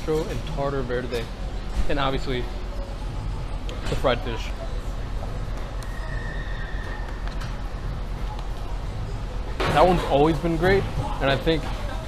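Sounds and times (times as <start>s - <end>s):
restaurant room hum: 0.0s - 12.0s.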